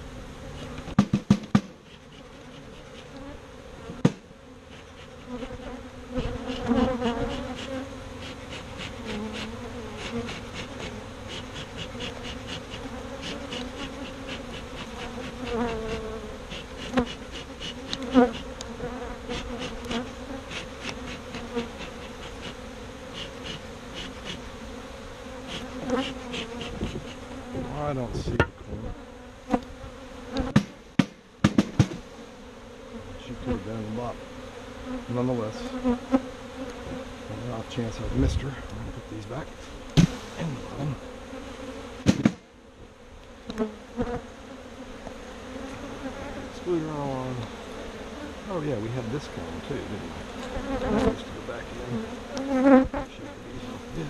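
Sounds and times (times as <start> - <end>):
honey bees buzzing: 0.0 - 54.0
sharp knocks: 0.9 - 1.8, 30.5 - 32.0, 40.0 - 40.2, 42.0 - 42.4.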